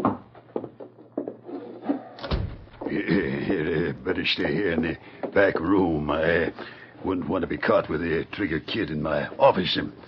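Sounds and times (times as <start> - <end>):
sudden thump: 2.2 - 2.9.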